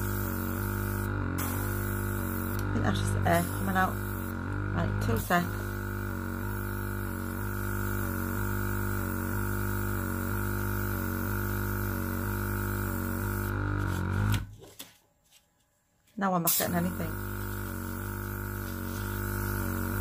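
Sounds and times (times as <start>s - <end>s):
airbrush compressor humming: 0.0s - 14.5s, 16.5s - 20.0s.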